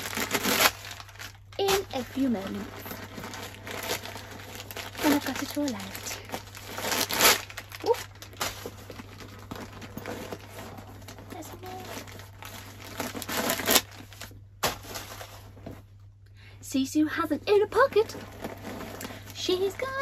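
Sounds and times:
packing material crinkling: 0.0s - 15.8s, 17.8s - 20.0s.

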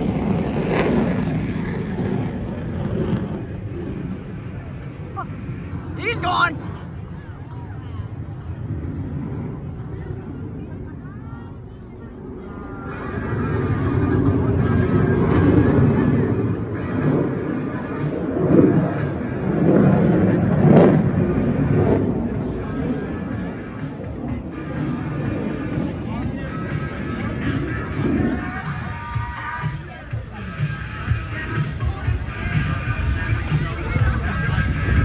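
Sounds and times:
crowd voices: 0.0s - 35.0s
low jet rumble: 0.0s - 35.0s
loud music over loudspeakers: 13.1s - 35.0s.

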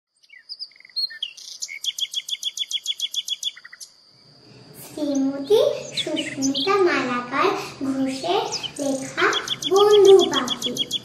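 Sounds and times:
small songbird chirping: 0.1s - 7.1s, 8.0s - 11.0s.

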